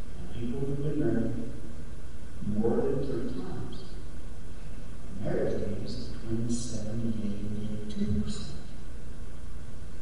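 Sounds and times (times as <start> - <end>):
man speaking over public address: 0.2 - 1.5, 2.4 - 3.9, 5.1 - 8.6.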